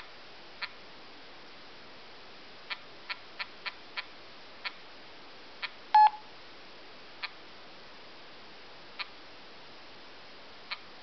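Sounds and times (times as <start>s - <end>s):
phone confirmation beep: 6.0s - 6.2s.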